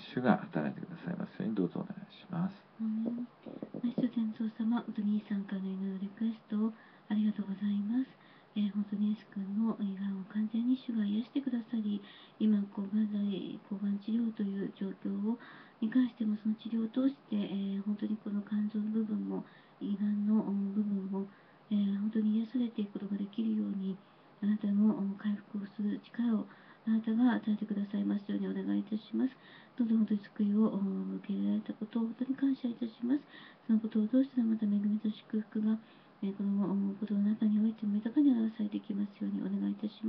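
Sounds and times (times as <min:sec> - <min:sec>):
woman praying into a microphone: 0:02.5 - 0:40.0.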